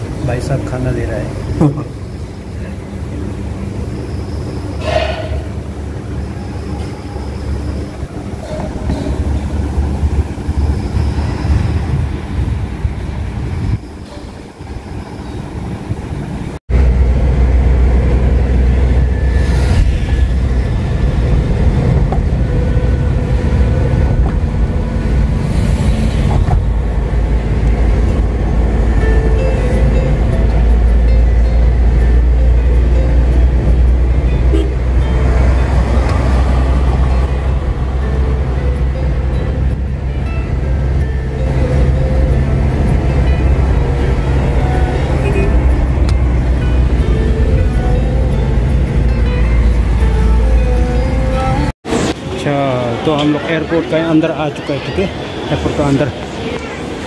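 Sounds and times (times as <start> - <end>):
car cabin road rumble: 15.9 - 51.7
music playing: 18.6 - 52.5.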